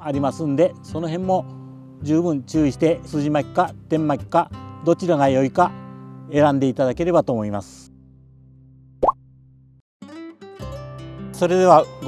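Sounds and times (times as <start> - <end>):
background music: 0.0 - 8.6, 10.0 - 12.0.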